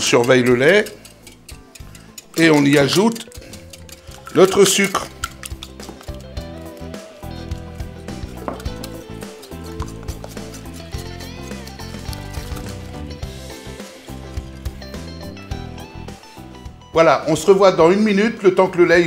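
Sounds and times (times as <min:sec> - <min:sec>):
whisk scraping a glass bowl: 0:00.0 - 0:15.1
background music: 0:00.0 - 0:19.0.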